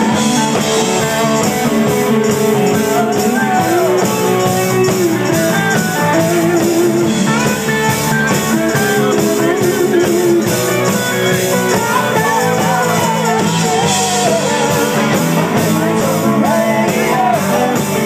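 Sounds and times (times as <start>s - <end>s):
bending electric guitar notes: 0.0s - 18.0s
live rock band playing: 0.0s - 18.0s.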